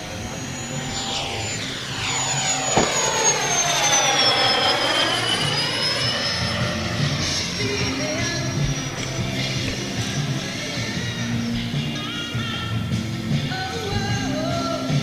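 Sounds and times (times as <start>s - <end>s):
model jet fan whining: 0.0s - 15.0s.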